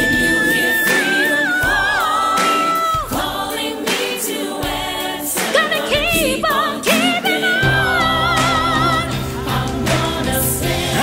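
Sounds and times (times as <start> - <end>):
gospel choir singing: 0.0 - 11.0
lead vocalist singing: 0.0 - 11.0.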